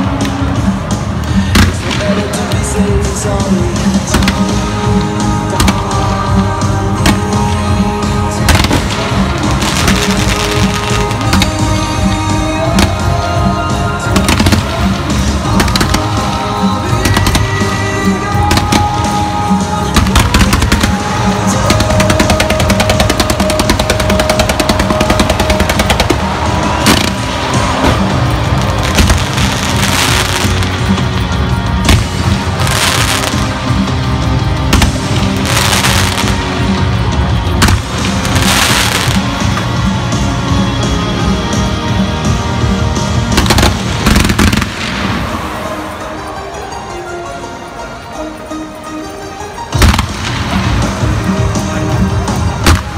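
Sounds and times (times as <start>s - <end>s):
fireworks banging: 0.0s - 46.4s, 49.7s - 52.9s
fireworks crackling: 0.0s - 46.9s, 49.5s - 52.9s
loud music: 0.0s - 52.9s.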